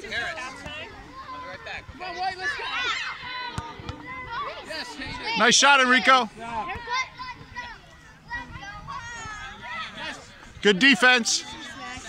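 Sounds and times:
children shouting while playing: 1.1 - 10.2.

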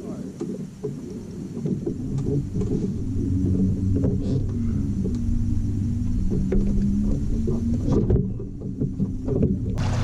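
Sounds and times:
boat motor hum: 0.0 - 10.0
rush of wind and water: 0.0 - 10.0
low knocks in a boat: 0.3 - 10.0.

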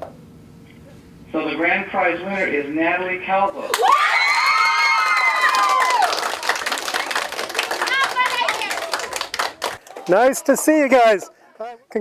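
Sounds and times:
clapping: 3.7 - 10.2
children screaming and cheering: 3.8 - 6.2.

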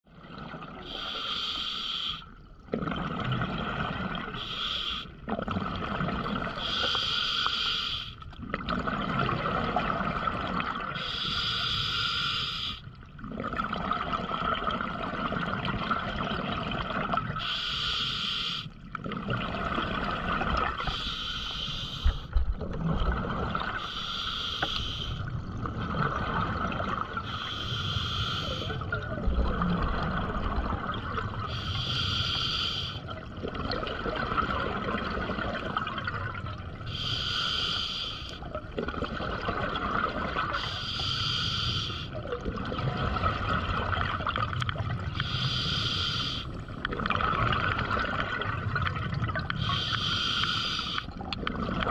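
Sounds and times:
hissing regulator inhale: 0.9 - 2.3, 4.4 - 5.2, 6.6 - 8.2, 11.0 - 12.9, 17.4 - 18.8, 20.8 - 22.4, 23.8 - 25.3, 27.2 - 28.8, 31.5 - 33.1, 36.9 - 38.4, 40.6 - 42.2, 45.1 - 46.6, 49.6 - 51.1
gurgle of exhaled bubbles: 2.6 - 4.5, 5.2 - 7.0, 8.3 - 11.2, 13.0 - 17.4, 18.8 - 21.1, 21.8 - 24.0, 25.1 - 27.6, 28.2 - 31.9, 33.0 - 37.3, 38.4 - 40.8, 42.0 - 51.9.

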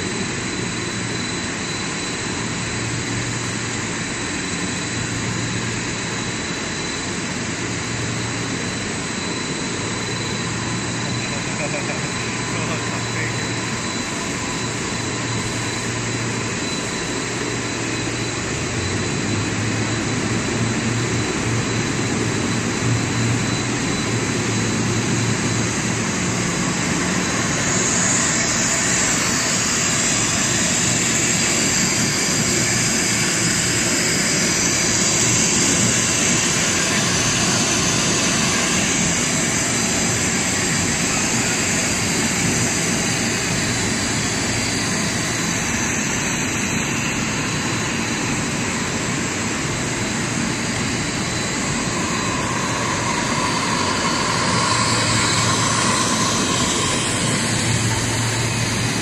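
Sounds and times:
faint high whine: 0.0 - 59.0
machinery rushing noise: 7.1 - 59.0.

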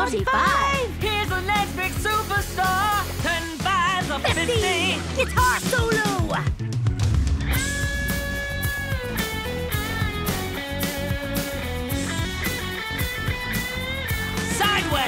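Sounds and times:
steady drum beat: 0.0 - 15.0.

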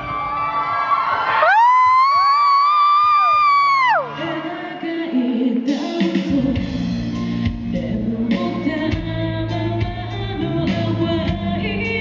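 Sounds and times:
audience screaming: 0.0 - 4.7
live band music: 5.7 - 12.0.

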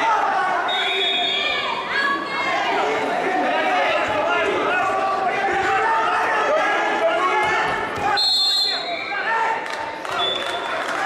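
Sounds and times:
shouting voices: 0.0 - 11.0
referee's whistle blast: 0.7 - 1.6, 8.1 - 9.1.

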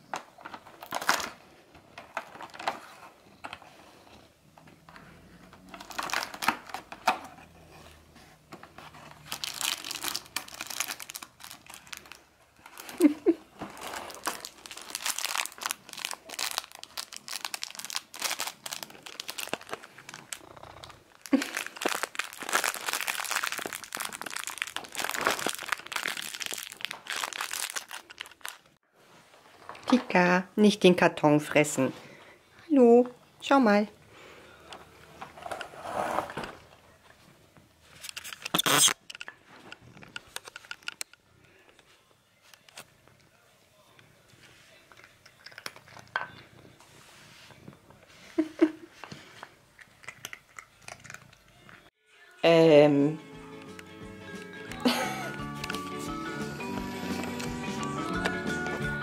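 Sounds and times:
cardboard tearing and crinkling: 0.5 - 1.4, 5.8 - 6.9, 8.8 - 20.4, 21.2 - 28.7.

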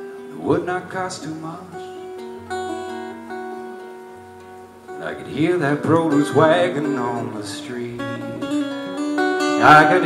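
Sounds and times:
acoustic guitar chords ringing: 0.0 - 10.0.

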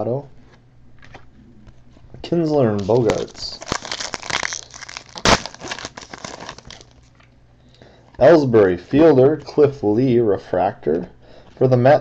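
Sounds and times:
wrapper crinkling: 2.6 - 7.3
wrapper ripping: 2.7 - 7.1.

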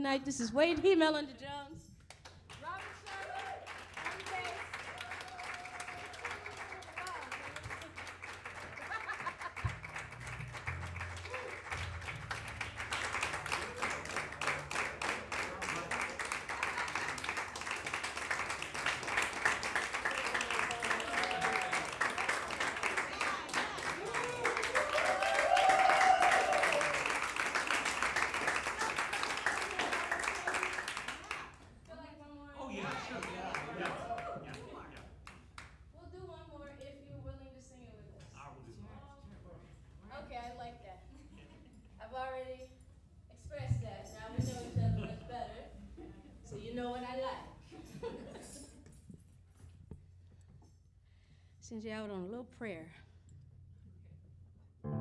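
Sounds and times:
audience applauding and cheering: 2.2 - 31.6, 32.9 - 35.4
audience shouts: 20.6 - 22.2, 22.9 - 27.1.

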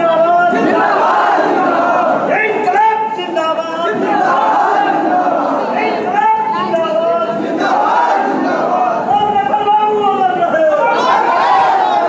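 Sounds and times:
large crowd shouting: 0.2 - 2.8, 3.9 - 6.5, 7.3 - 9.1, 10.6 - 12.0.

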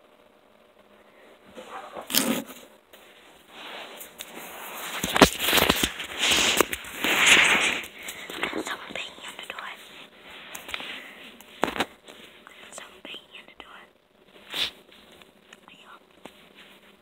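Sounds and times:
faint whispering: 8.1 - 10.1, 12.4 - 14.0, 15.6 - 16.2.

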